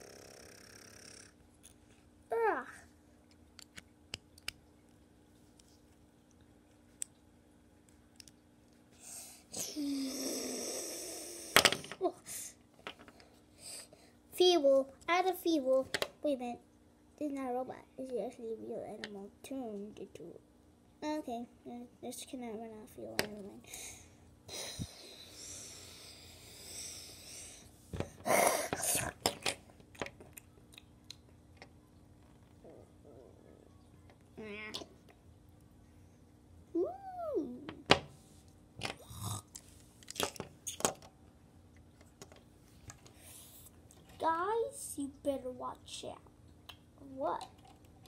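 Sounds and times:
person hissing by mouth: 9.1s - 11.6s.

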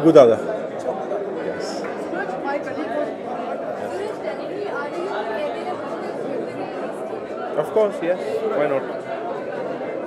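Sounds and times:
indistinct crowd chatter: 0.0s - 10.0s.

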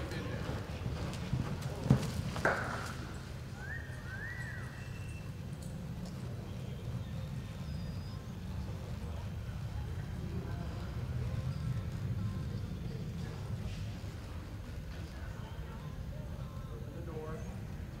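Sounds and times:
horse hooves on dirt: 0.0s - 7.4s.

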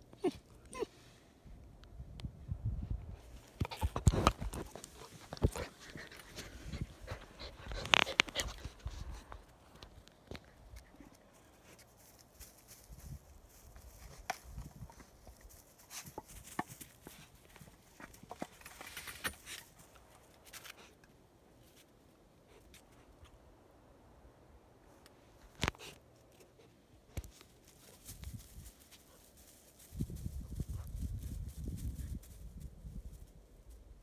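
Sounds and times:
puppy panting: 4.5s - 9.3s.

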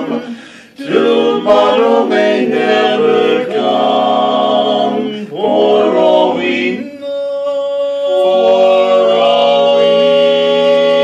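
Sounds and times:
men singing a cappella harmony: 0.0s - 11.0s.

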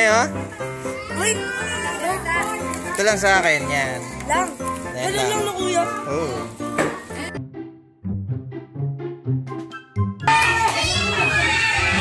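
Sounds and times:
children shouting and chattering: 0.0s - 7.4s, 10.3s - 12.0s.

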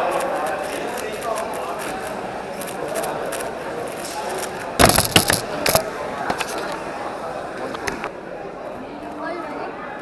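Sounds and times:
loud sharp clacks and knocks: 4.8s - 5.8s.

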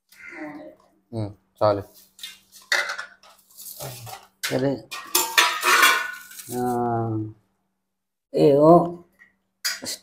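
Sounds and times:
steel plates clattering on tile floor: 2.2s - 6.6s.

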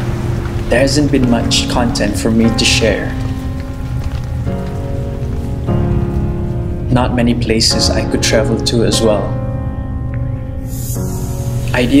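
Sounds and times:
deep rumble: 0.0s - 7.4s
steady rain-like noise: 0.0s - 8.7s, 10.1s - 12.0s
soft music of sustained chords: 0.0s - 12.0s.

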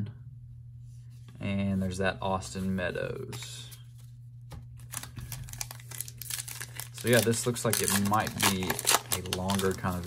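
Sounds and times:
wrapper crinkling and tearing: 4.8s - 10.0s.

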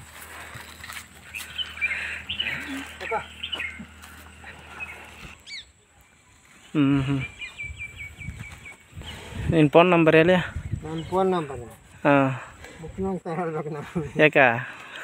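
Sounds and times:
small birds chirping: 0.3s - 14.0s
man murmuring: 6.7s - 7.4s.

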